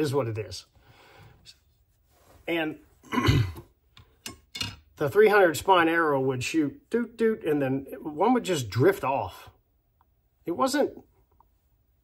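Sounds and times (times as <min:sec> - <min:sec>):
man speaking: 0:00.0 - 0:00.7, 0:02.4 - 0:03.0, 0:05.0 - 0:09.6, 0:10.4 - 0:11.1
man clearing throat: 0:03.0 - 0:03.8.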